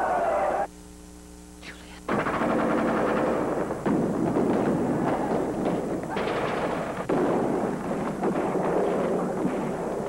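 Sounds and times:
continuous battle din: 2.1 - 10.0
machine-gun fire: 2.1 - 10.0
sharp crack: 2.1 - 10.0.

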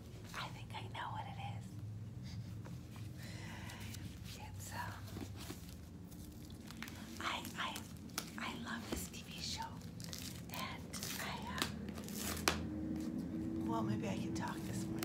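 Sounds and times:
packaging crinkling: 5.6 - 8.7, 9.3 - 12.7.

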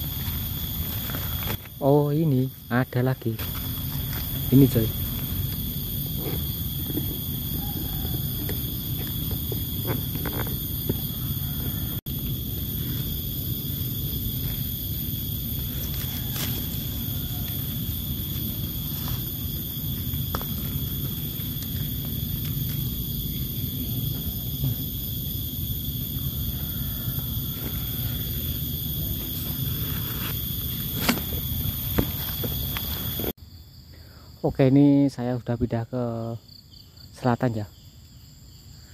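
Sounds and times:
high-pitched insect drone: 0.0 - 33.4.

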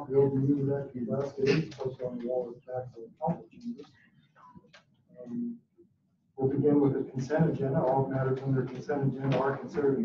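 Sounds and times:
low murmur of voice: 0.0 - 4.0, 6.4 - 10.0.

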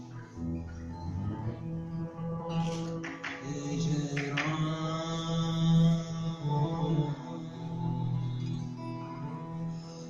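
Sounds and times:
bass guitar: 0.0 - 4.4
acoustic guitar: 0.0 - 10.0
man singing chant-like notes: 0.3 - 10.0.

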